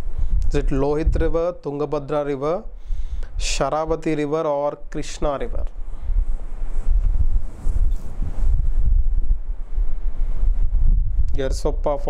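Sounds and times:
wind buffeting microphone: 0:00.0 - 0:04.3, 0:04.9 - 0:12.0.

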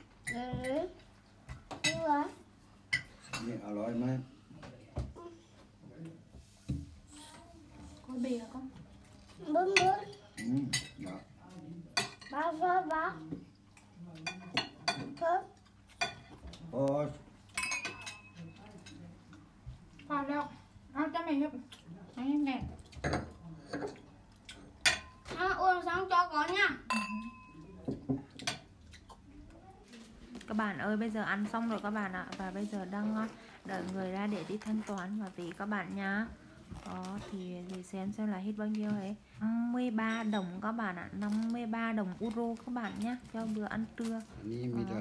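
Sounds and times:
dishes and cutlery clattering: 0:02.9 - 0:03.8, 0:14.2 - 0:16.5, 0:17.5 - 0:19.0, 0:22.9 - 0:25.3, 0:26.9 - 0:29.2
cutlery clinking on china plates: 0:17.5 - 0:19.0, 0:26.9 - 0:29.2.

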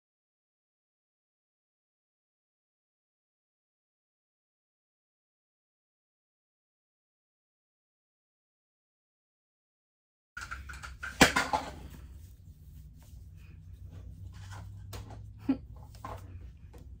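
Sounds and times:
fabric headband rustling: 0:11.8 - 0:17.0.

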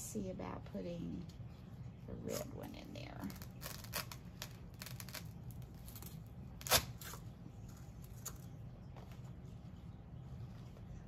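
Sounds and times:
steady low hum: 0:00.0 - 0:11.0
sharp crackle: 0:03.2 - 0:07.2.

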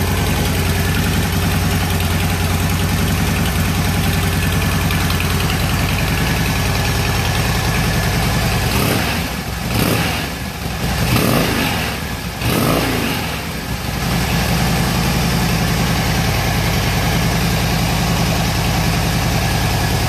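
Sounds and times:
motorcycle engine revving and idling: 0:00.0 - 0:20.0.

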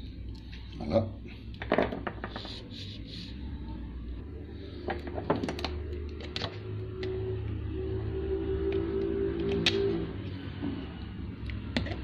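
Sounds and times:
low hum: 0:02.6 - 0:11.8.

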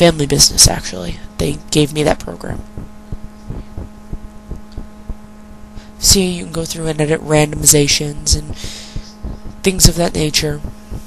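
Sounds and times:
low electrical hum: 0:00.0 - 0:11.0
soft low thumps: 0:02.4 - 0:05.8, 0:07.7 - 0:11.0.

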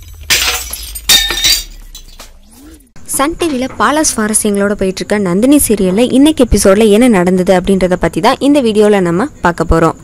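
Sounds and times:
glass shattering: 0:00.0 - 0:02.5.

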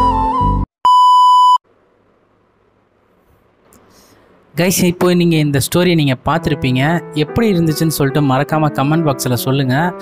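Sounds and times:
loud electronic beep: 0:00.9 - 0:01.6
background music with low drone: 0:05.8 - 0:10.0.

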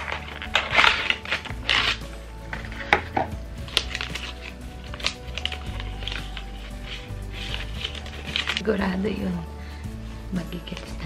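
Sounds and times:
plastic wrapper tearing: 0:00.0 - 0:08.6.

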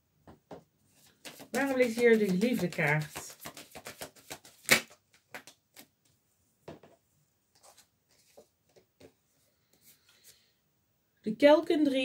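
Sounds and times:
cards being handled: 0:01.0 - 0:05.9, 0:07.6 - 0:09.1.

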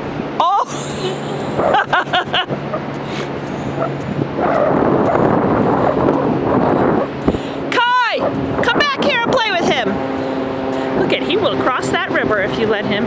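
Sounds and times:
steady rushing noise: 0:00.0 - 0:13.0.

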